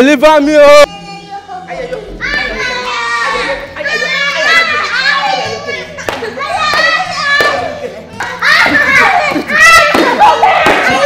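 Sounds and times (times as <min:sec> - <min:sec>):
young children crying and wailing: 0:01.0 - 0:11.0.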